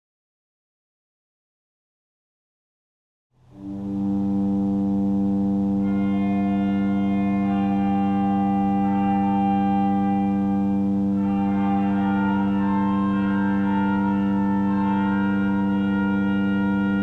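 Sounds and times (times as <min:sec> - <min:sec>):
pipe organ playing slow piece: 0:03.5 - 0:17.0.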